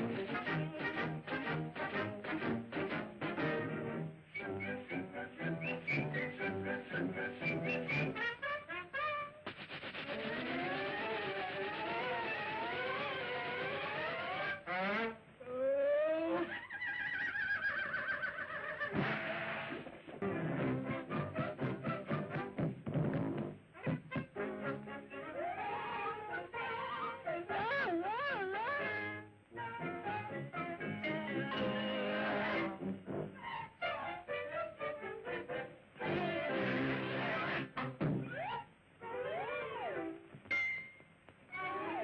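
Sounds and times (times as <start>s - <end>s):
band music: 0.0s - 15.0s.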